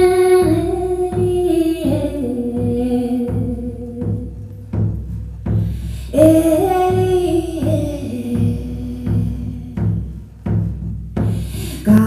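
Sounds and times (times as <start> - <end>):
frame drum slow beat: 0.0 - 12.0.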